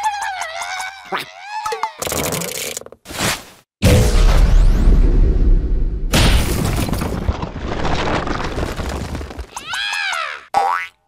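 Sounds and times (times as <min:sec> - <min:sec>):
cartoon boing: 0:10.6 - 0:11.0.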